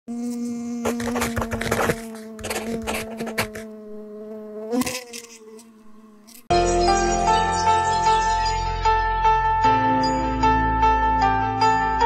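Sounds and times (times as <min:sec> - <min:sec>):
bee buzzing: 0:00.1 - 0:06.5.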